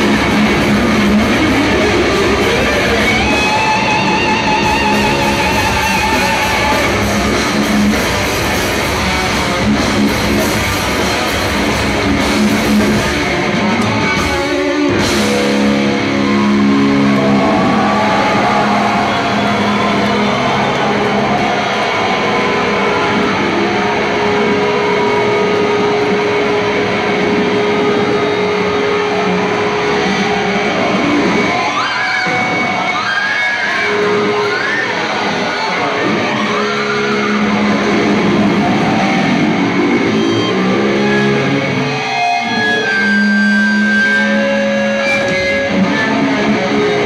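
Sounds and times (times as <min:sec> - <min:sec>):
heavy metal electric guitars: 0:00.0 - 0:47.0.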